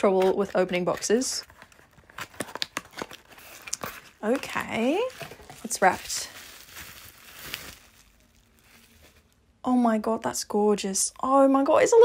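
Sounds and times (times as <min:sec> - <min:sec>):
paper wrapping rustling: 0:00.2 - 0:09.4.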